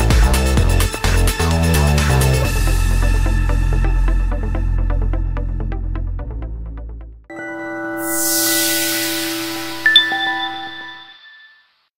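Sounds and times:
electronic jingle chime notes: 0:09.9 - 0:11.6.

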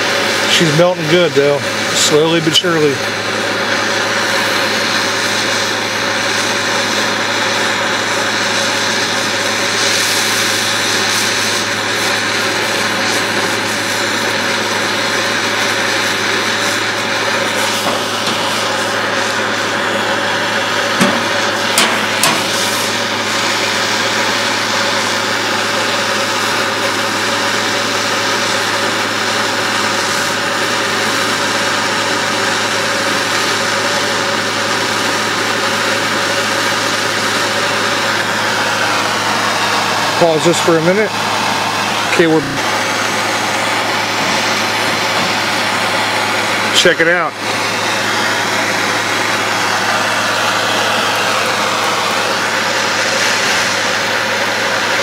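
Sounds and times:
propane torch hissing: 0:00.0 - 0:55.0.

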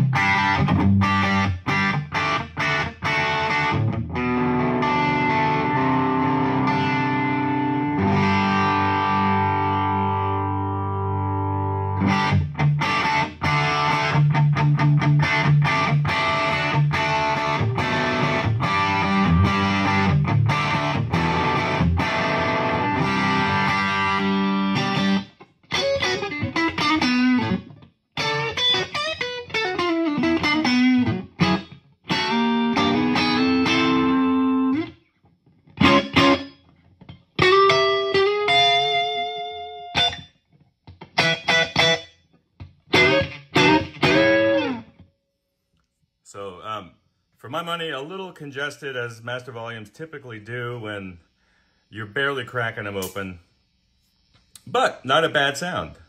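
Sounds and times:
electric guitar through tube amp: 0:00.0 - 0:34.9, 0:35.7 - 0:40.2, 0:42.6 - 0:45.0.

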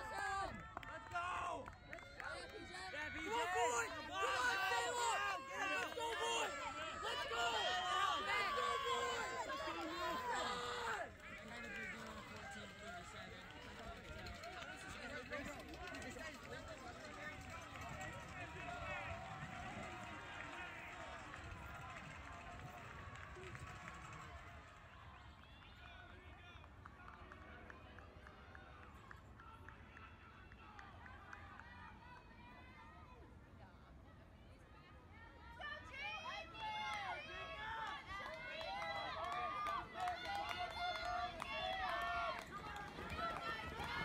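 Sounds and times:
spectators shouting encouragement: 0:00.0 - 0:15.7, 0:35.6 - 0:44.0
runners' footfalls on grass: 0:39.7 - 0:44.0.

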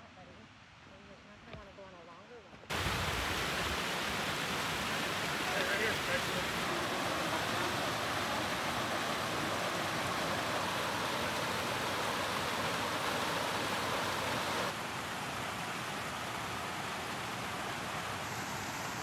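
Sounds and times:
creek rushing over rocks: 0:02.7 - 0:19.0.

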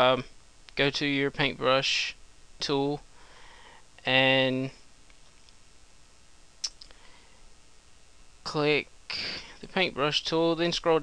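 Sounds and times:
faint room hiss: 0:00.0 - 0:11.0.

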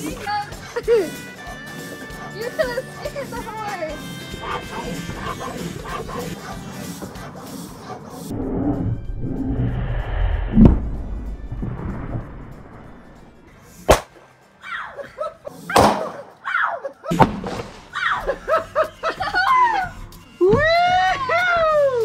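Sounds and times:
background music: 0:00.0 - 0:22.0
heavy low thump: 0:08.3 - 0:13.6
children shrieking: 0:17.9 - 0:18.4.

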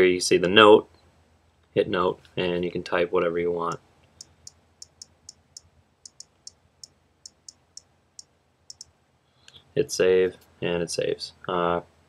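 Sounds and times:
on-screen keyboard clicks: 0:04.2 - 0:07.9, 0:08.7 - 0:08.9.

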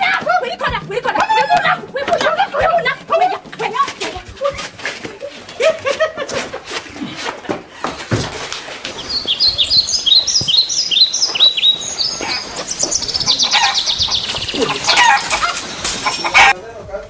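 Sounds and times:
birds chirping and chattering: 0:08.5 - 0:16.6.

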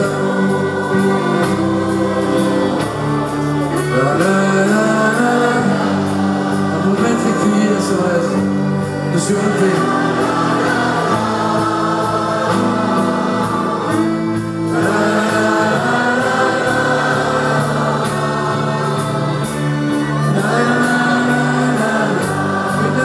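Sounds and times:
choir singing: 0:00.0 - 0:23.0
electric guitar: 0:00.0 - 0:23.0
male lead singer: 0:00.0 - 0:23.0.

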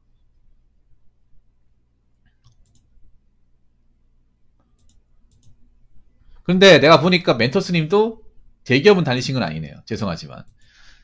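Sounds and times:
low steady hum: 0:00.0 - 0:11.0
faint computer clicks: 0:02.2 - 0:02.9, 0:04.6 - 0:05.6, 0:10.4 - 0:10.8.

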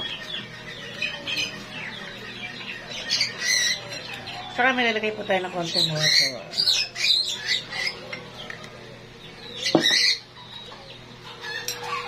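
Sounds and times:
bird squawking: 0:05.5 - 0:08.1, 0:09.5 - 0:12.0.

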